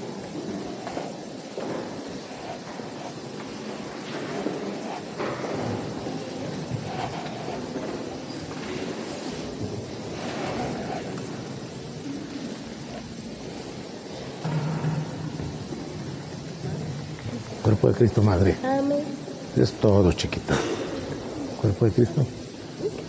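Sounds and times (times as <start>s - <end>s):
people moving about indoors: 0.0s - 23.0s.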